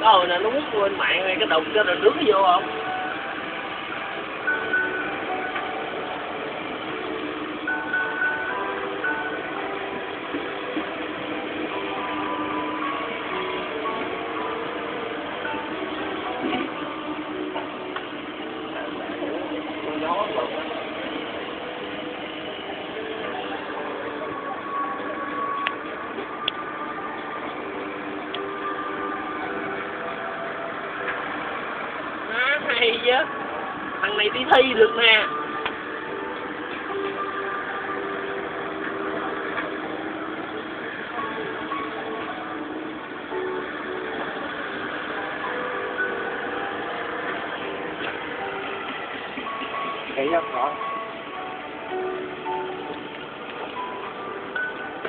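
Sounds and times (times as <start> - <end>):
sustained musical tones: 0.0 - 55.0
traffic hum: 0.0 - 55.0.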